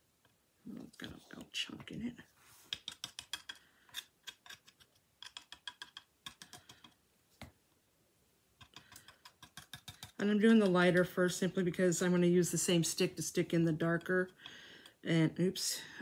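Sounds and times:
stick scraping and tapping in jar: 2.7 - 7.0, 8.6 - 11.0, 12.5 - 15.0.

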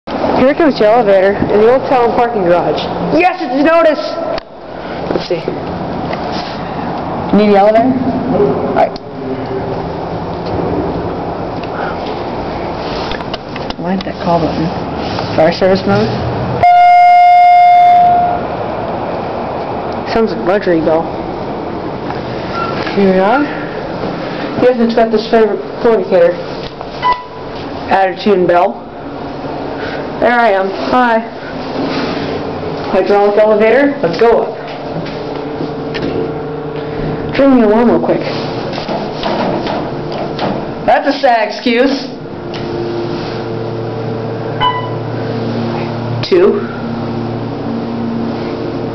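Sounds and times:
elevator arrival bell ringing: 16.6 - 18.5, 44.6 - 45.1
button clicks: 44.6 - 45.0.

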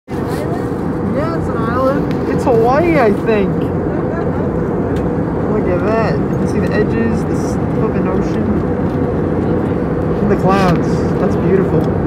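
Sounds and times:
airliner cabin rumble: 0.1 - 12.0.

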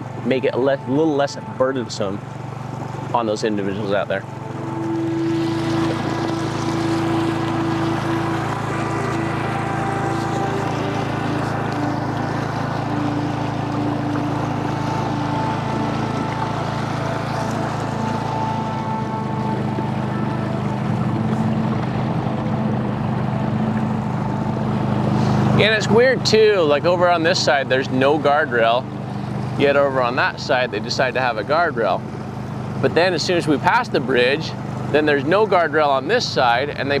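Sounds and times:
outboard motor running: 0.0 - 37.0.

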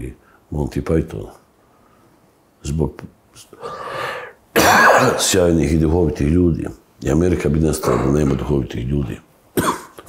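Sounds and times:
rasping breath: 3.6 - 4.4
man coughing: 4.6 - 5.3, 7.8 - 8.3, 9.6 - 10.0.

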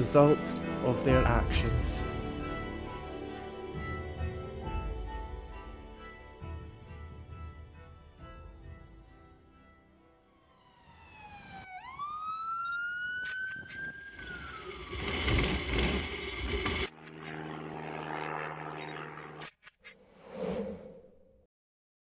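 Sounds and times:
sharp clicks: 13.2 - 13.9, 16.8 - 17.4
sliding whistling tone: 13.2 - 16.9
low buzzing hum: 14.2 - 19.4.

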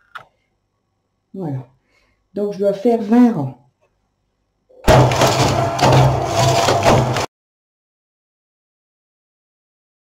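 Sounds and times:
knitting machine carriage rattling: 4.9 - 7.3.

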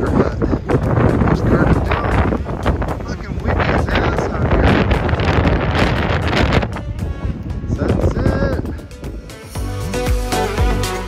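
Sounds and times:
wind buffeting microphone: 0.0 - 9.5
background music: 0.0 - 11.0.

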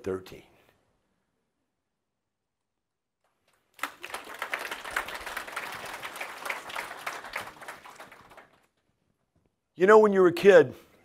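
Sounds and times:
audience applauding: 3.6 - 8.9.

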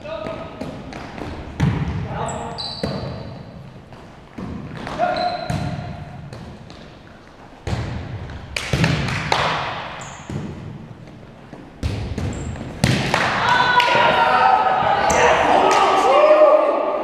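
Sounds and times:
volleyball being struck: 11.8 - 13.5.

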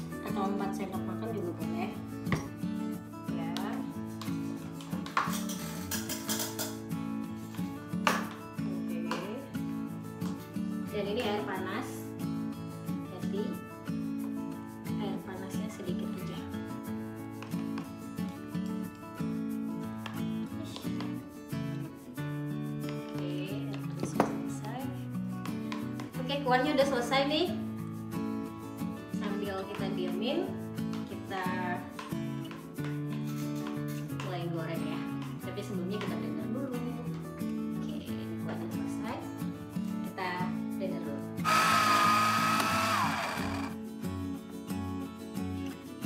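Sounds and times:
background music: 0.0 - 46.0.

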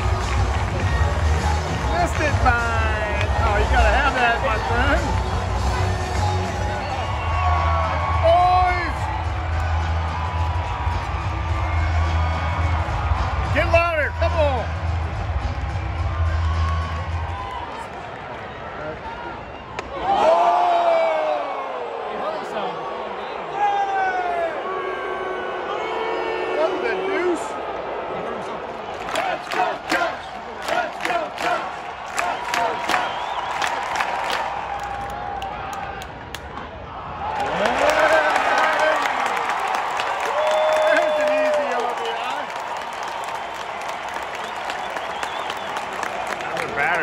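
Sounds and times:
crowd chatter: 0.0 - 7.6
crowd cheering: 0.0 - 47.0.

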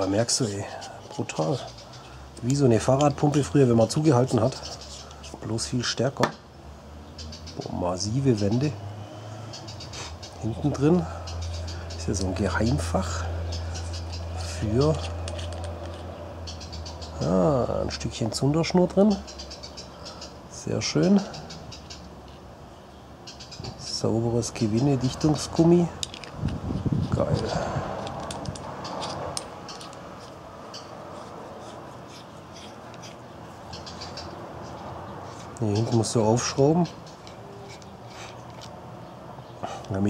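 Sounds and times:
metal cap clicks and scratches: 13.5 - 16.2, 24.6 - 38.8
small metallic clicks and taps: 26.0 - 26.6, 27.4 - 30.9.

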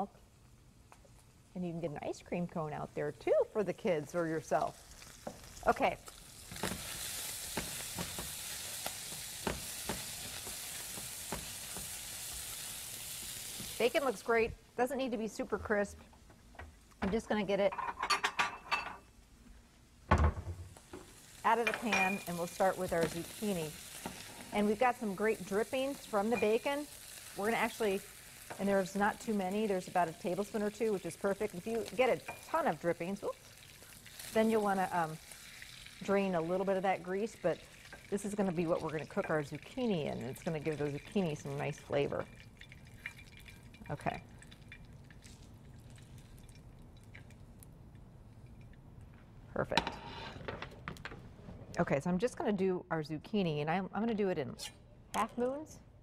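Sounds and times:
bacon fat popping in skillet: 4.0 - 14.4, 20.7 - 49.2
metal utensils clinking on cookware: 17.1 - 19.0, 21.5 - 23.2.

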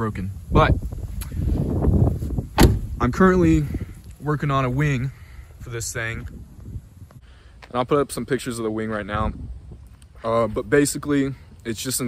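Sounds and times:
rustle of movement: 0.8 - 8.6
car door slamming shut: 2.5 - 3.0.

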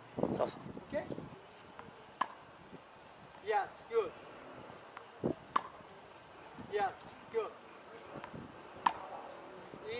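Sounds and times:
racket striking tennis ball: 2.1 - 2.5, 4.7 - 5.9, 8.2 - 9.3.

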